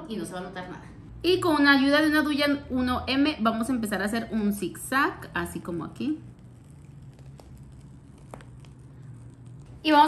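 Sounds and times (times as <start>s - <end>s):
low hum: 5.2s - 10.0s.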